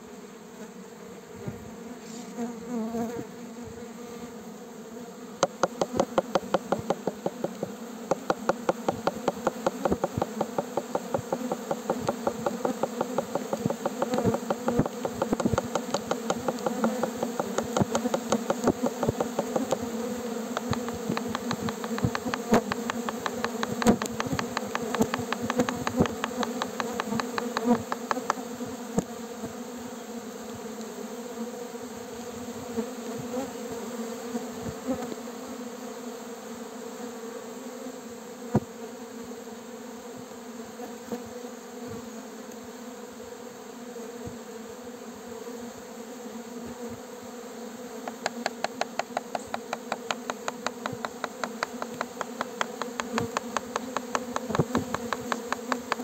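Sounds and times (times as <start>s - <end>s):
bees buzzing: 0.0s - 56.0s
rapid sharp ticks: 5.4s - 19.9s, 20.5s - 28.4s, 48.0s - 56.0s.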